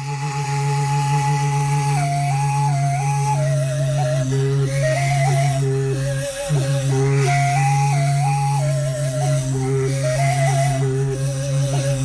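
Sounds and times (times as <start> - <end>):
end-blown flute playing: 0.0 - 12.0
low hummed drone: 0.0 - 12.0.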